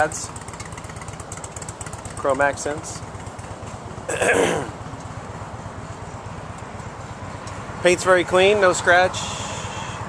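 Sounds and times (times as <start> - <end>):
motorcycle engine idling: 0.0 - 10.0
man clearing his throat: 4.1 - 4.8.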